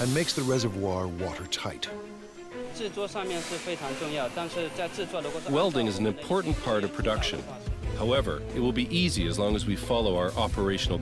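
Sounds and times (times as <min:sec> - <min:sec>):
steady hiss: 0:00.0 - 0:01.0, 0:03.1 - 0:05.7
man speaking: 0:00.0 - 0:02.0.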